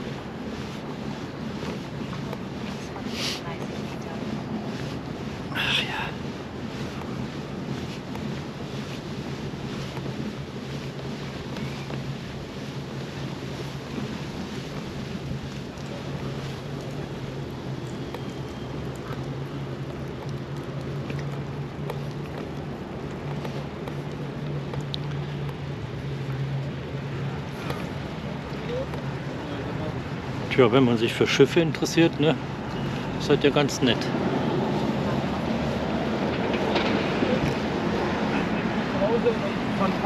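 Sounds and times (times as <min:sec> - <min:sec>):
bicycle tyres on brick paving: 0:00.0 - 0:40.0
steady low hum: 0:00.0 - 0:40.0
wind buffeting microphone: 0:00.0 - 0:40.0.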